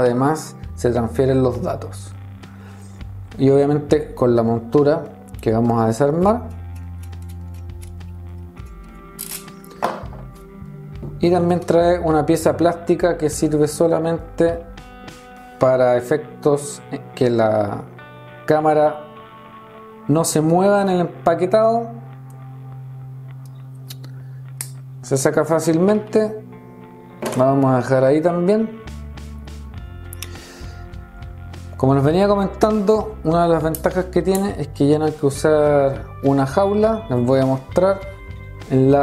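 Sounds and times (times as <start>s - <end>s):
background music with held notes: 0.0s - 39.0s.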